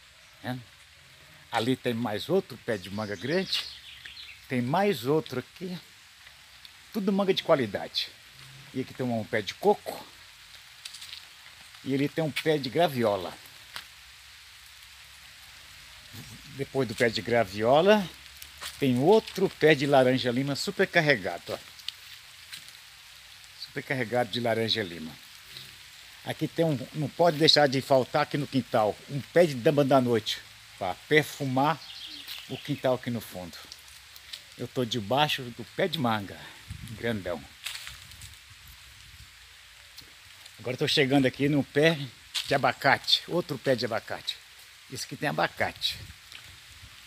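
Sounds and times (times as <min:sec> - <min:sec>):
faint outdoor hiss: 0:00.0 - 0:47.0.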